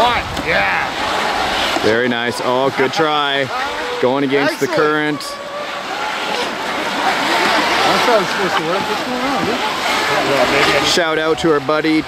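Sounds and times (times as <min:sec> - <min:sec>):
river rapids rushing: 0:00.0 - 0:12.0
electric boat motors whining: 0:00.9 - 0:11.3.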